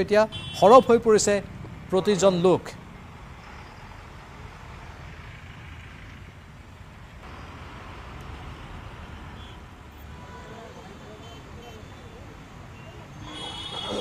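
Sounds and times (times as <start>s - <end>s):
traffic jam rumble: 0.0s - 14.0s.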